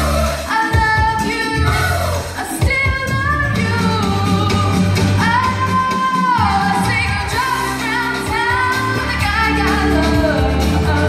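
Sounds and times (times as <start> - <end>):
backing track with bass line: 0.0 - 11.0
woman singing pop song: 0.0 - 11.0.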